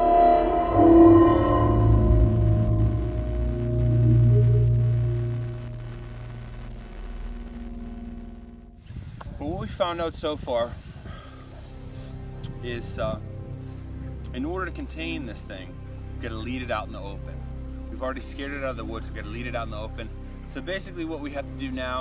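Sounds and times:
sustained chord of tones: 0.0s - 8.8s
deep low rumble: 0.0s - 9.6s.

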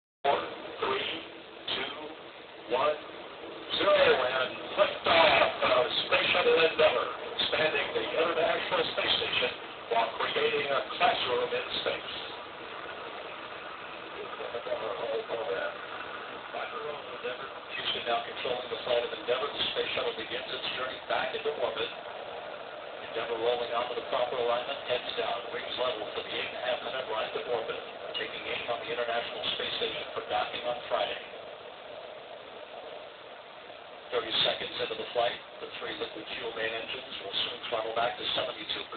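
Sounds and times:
steady rushing noise: 0.2s - 38.9s
man's voice: 3.7s - 12.4s, 23.0s - 31.3s.

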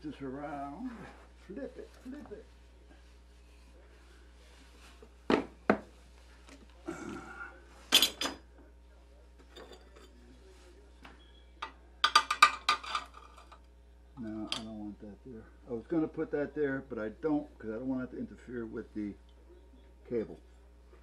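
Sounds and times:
metal tools clinking on workbench: 7.9s - 8.4s, 12.0s - 13.6s.

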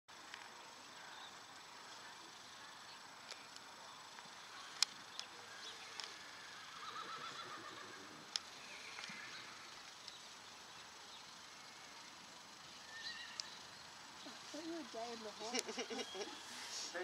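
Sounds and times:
horse whinnying: 6.6s - 8.2s.

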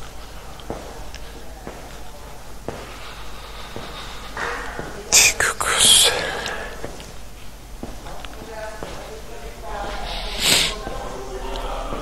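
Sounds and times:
person whispering: 4.8s - 6.9s, 9.8s - 12.0s.

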